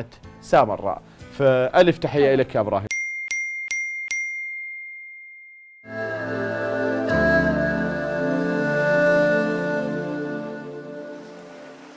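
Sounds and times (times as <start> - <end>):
music: 0.0 - 2.9, 5.9 - 11.9.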